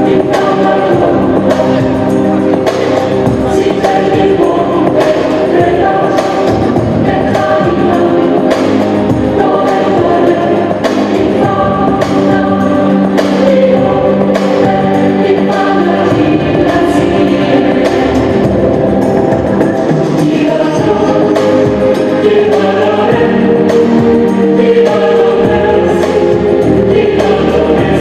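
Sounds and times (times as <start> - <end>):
runway music with choir singing: 0.0 - 28.0.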